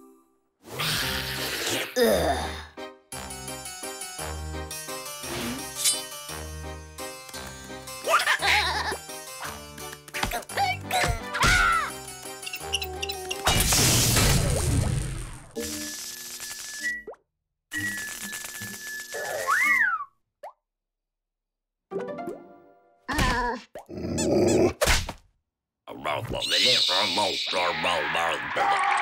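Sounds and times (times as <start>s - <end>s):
comic cartoon music: 0.6s - 15.3s, 21.9s - 23.3s.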